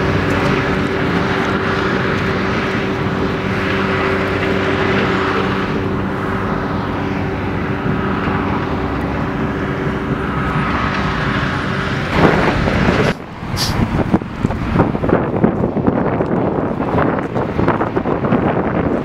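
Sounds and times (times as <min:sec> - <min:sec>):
heavy machine engine running: 0:00.0 - 0:19.0.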